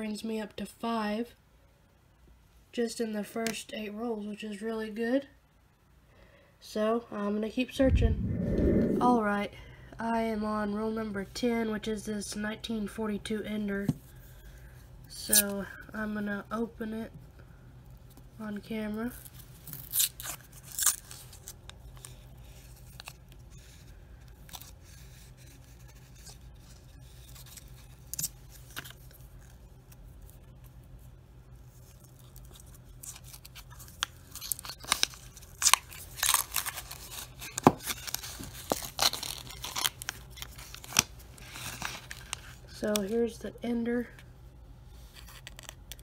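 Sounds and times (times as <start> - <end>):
paper wrapper crinkling and tearing: 19.6 - 30.4, 31.6 - 43.0, 45.0 - 46.0.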